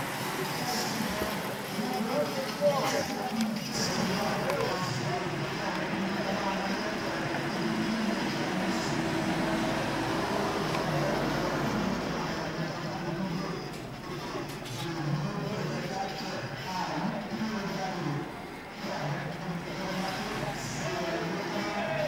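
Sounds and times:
indistinct chatter of spectators: 0:00.0 - 0:22.0
car engine running: 0:03.7 - 0:14.4.

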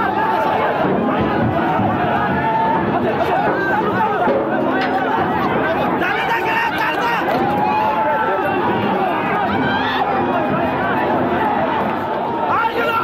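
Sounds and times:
crowd shouting and chattering: 0:00.0 - 0:13.0.

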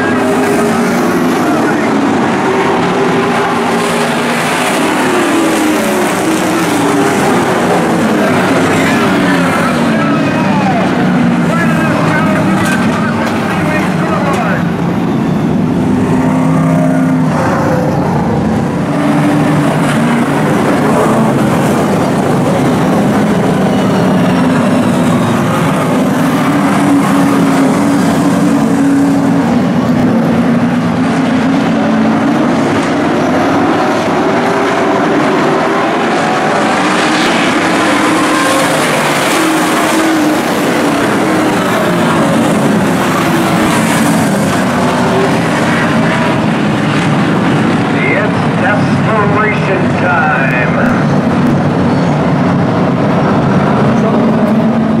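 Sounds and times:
race car engines droning: 0:00.0 - 0:55.0.

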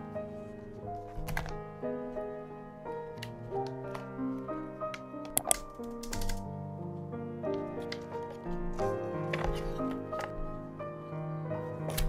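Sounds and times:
background music: 0:00.0 - 0:12.0
plastic keyboard clicks and taps: 0:05.2 - 0:06.4.

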